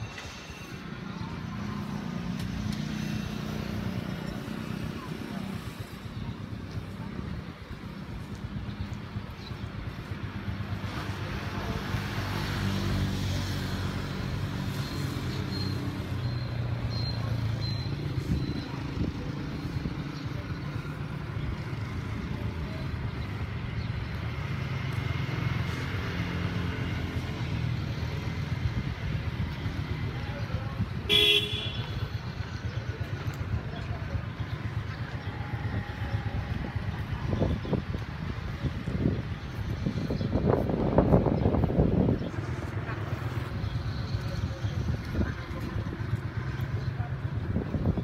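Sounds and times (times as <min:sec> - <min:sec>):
traffic engine rumble: 0:00.0 - 0:48.0
car horn toot: 0:31.1 - 0:32.0.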